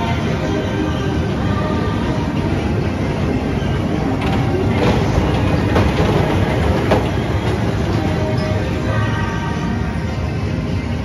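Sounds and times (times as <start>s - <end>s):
fairground ride rumbling on track: 0.0s - 11.0s
wheel clacks: 3.8s - 8.9s.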